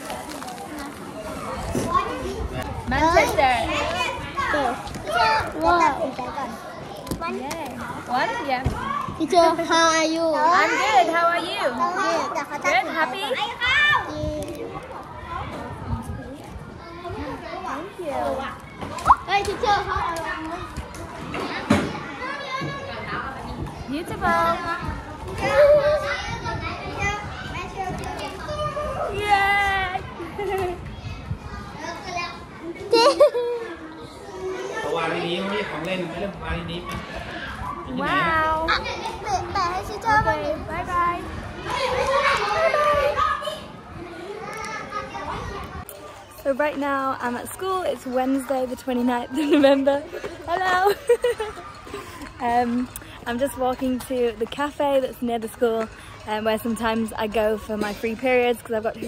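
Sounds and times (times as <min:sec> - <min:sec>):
children chattering: 0:00.0 - 0:59.0.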